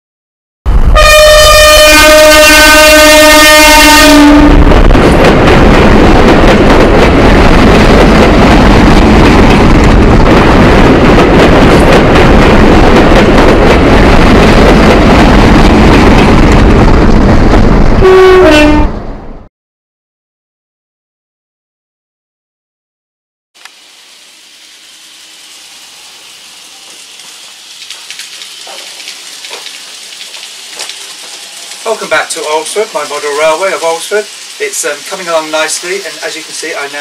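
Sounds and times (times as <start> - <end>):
train horn blast: 0.8 - 4.9, 18.0 - 19.0
train wheels rumbling on rails: 1.5 - 18.1, 24.0 - 37.0.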